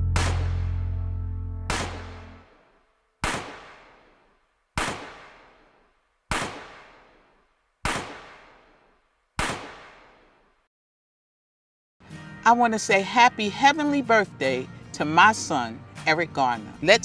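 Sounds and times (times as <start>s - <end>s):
sharp echoing bang: 0.0s - 0.8s, 1.7s - 2.4s
song chord: 0.0s - 2.4s.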